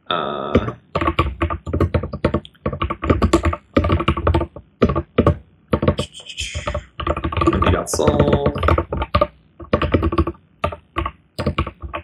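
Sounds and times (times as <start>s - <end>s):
fast typing on keyboard: 0.5s - 12.0s.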